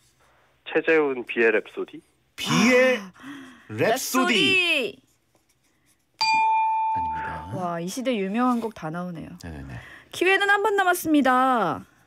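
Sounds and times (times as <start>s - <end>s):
bell-like ding: 6.2s - 7.4s.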